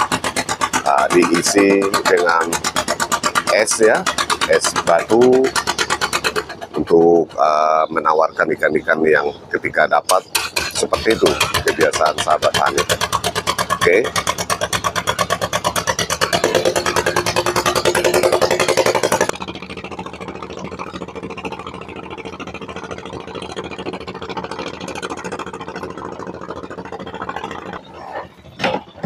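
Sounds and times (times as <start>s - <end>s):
boat engine running: 0.0s - 29.0s.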